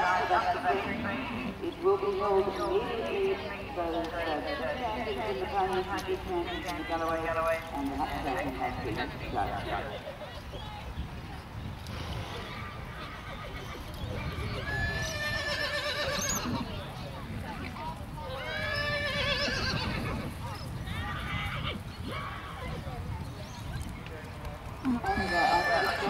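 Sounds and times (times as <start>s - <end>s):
horse whinnying: 14.5s - 16.7s, 18.4s - 20.3s, 25.0s - 26.0s.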